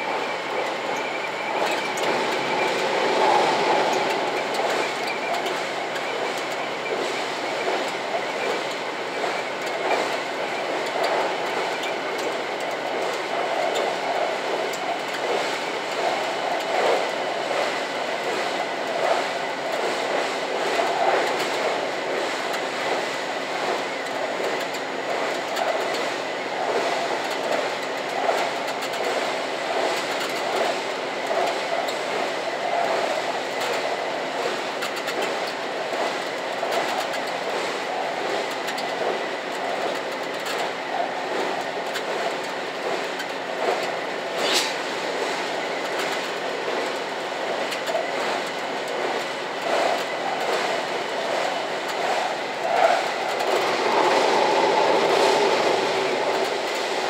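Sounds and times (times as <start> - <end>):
rail clatter clicks: 0.0 - 57.0
train engine drone: 0.0 - 57.0
train wheels rumbling on rail: 0.0 - 57.0.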